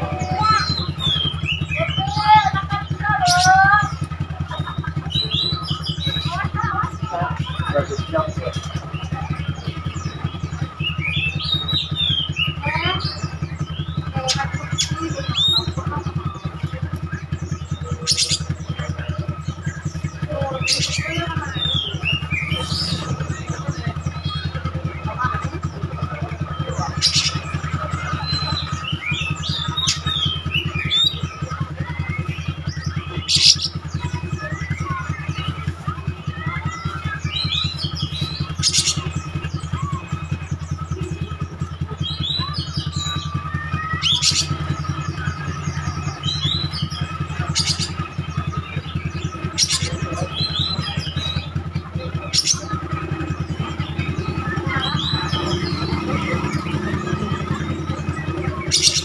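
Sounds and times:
bird singing whistled phrases: 0.0 - 59.0
steady low hum: 0.0 - 59.0.

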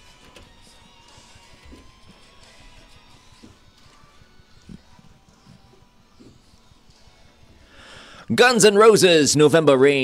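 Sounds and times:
breathing into a microphone: 7.5 - 8.3
host speaking: 8.3 - 10.0.

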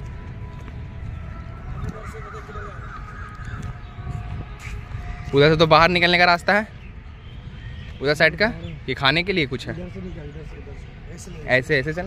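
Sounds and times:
animal wavering call: 1.6 - 5.7.

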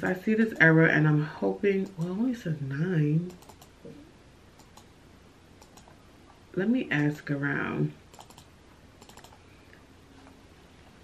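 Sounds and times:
typing on computer keyboard: 3.3 - 3.7, 4.6 - 4.9, 5.6 - 5.9, 8.1 - 9.4.

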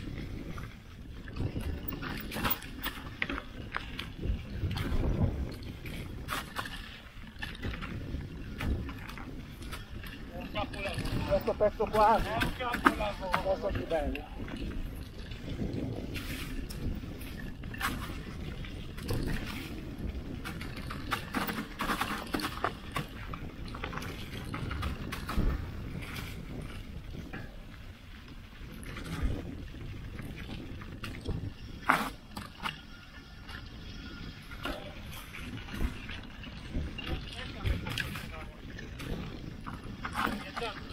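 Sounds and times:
bike knocks and rattles: 0.0 - 40.9
bike tyres rumbling on dirt: 0.0 - 40.9.

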